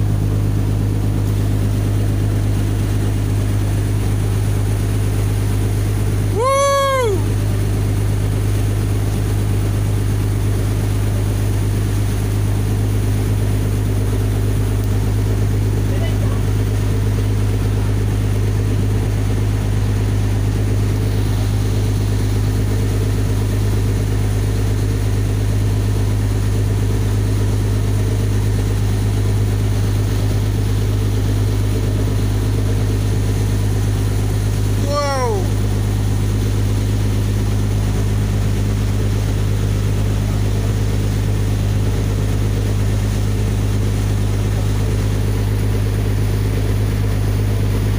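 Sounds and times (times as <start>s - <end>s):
boat engine drone: 0.0s - 47.9s.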